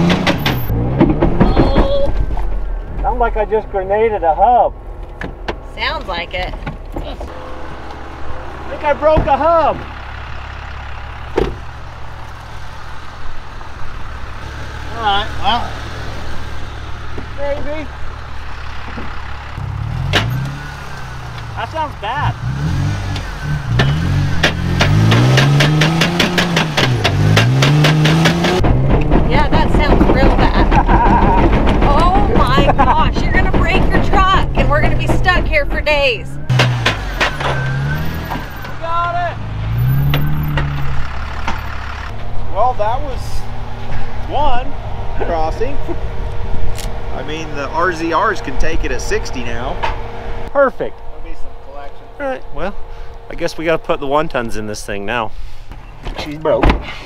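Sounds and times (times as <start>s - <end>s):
pickup engine idling and revving: 0.0s - 57.0s.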